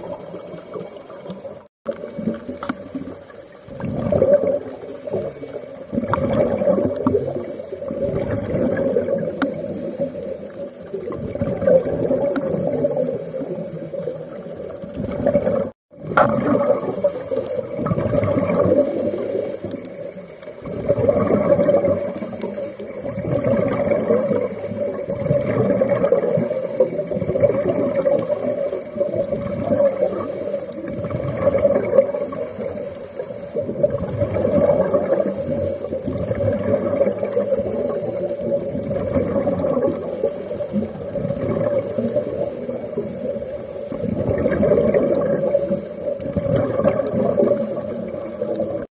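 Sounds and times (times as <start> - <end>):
exhaled bubbles rushing: 0.0 - 48.9
steady underwater hum: 0.0 - 48.9
diver breathing through regulator: 16.7 - 23.0, 34.9 - 36.4, 37.2 - 38.8.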